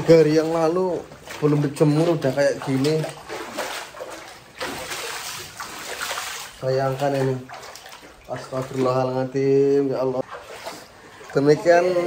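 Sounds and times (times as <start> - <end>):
rushing splashing water: 0.0 - 12.0.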